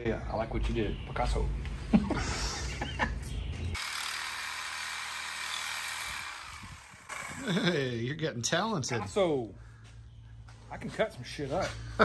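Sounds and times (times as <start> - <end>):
reciprocating saw cutting metal: 3.8 - 7.7.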